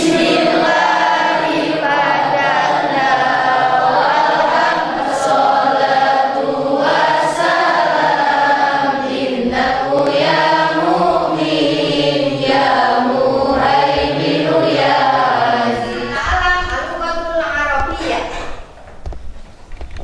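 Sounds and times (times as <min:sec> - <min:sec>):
voices chanting in unison: 0:00.0 - 0:16.7.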